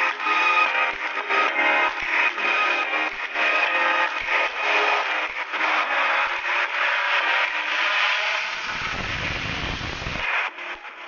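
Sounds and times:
firework fountain hissing: 8.3 - 10.3.

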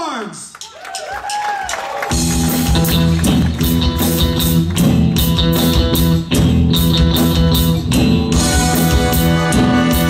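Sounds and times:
live rock band playing: 1.7 - 10.0.

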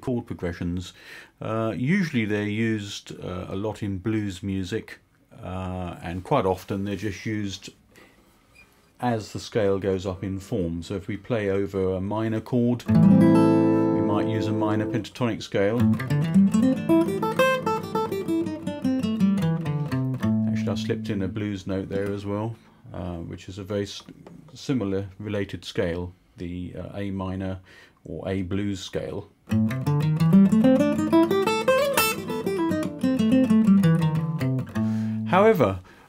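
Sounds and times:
acoustic guitar single notes: 12.9 - 15.1, 29.5 - 35.4.

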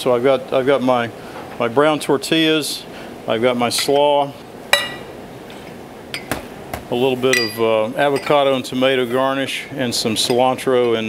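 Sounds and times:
steady low background noise: 0.0 - 11.0.

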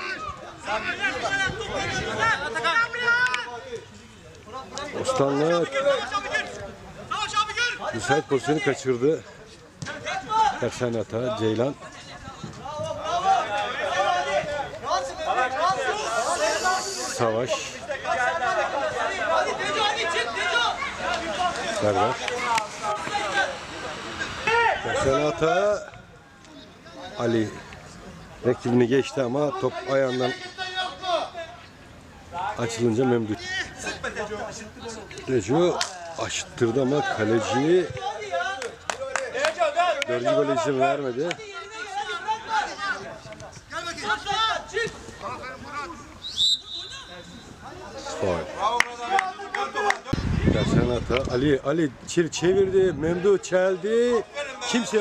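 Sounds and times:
men calling out and chattering: 0.0 - 55.0
referee's whistle blast: 46.2 - 47.5.

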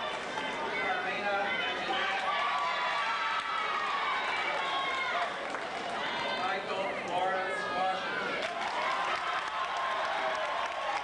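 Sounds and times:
audience applauding: 1.9 - 6.4, 8.3 - 11.0.

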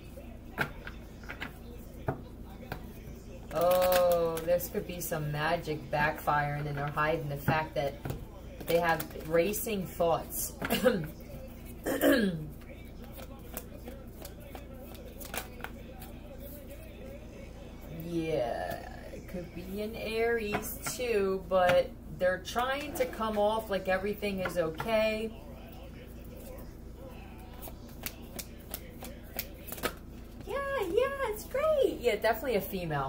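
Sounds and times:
cards being shuffled: 13.0 - 16.2, 27.4 - 30.4.

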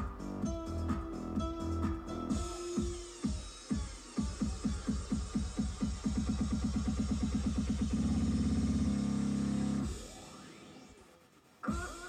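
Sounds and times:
electronic rock band playing: 0.0 - 9.0.

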